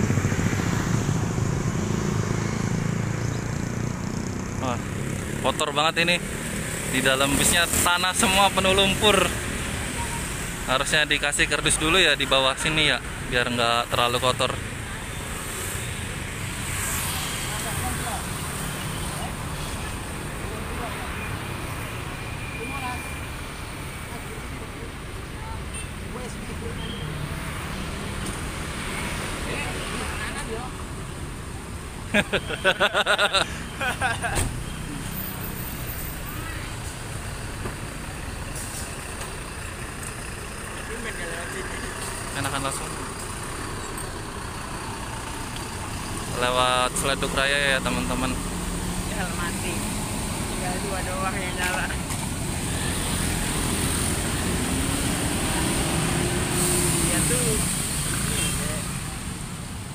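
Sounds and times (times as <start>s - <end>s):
bus diesel engine rumbling: 4.6s - 16.6s, 17.4s - 59.9s
bus diesel engine idling: 36.3s - 46.9s.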